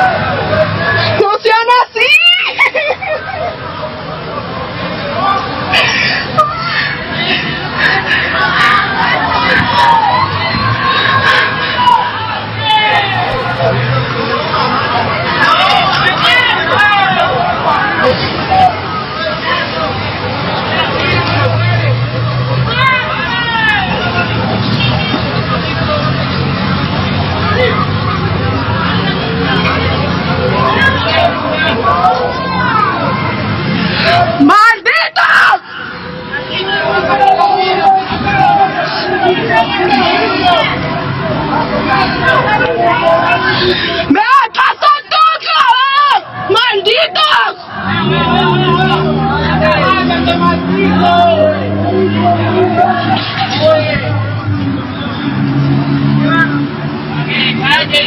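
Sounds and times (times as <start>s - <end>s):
hubbub of voices: 0.0s - 58.0s
low traffic rumble: 0.0s - 58.0s.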